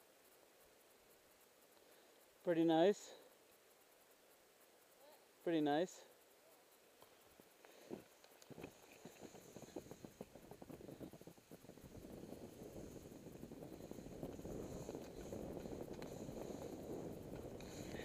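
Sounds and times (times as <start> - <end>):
skis hissing over snow: 4.8 - 18.0
skis crunching on snow: 7.0 - 18.0.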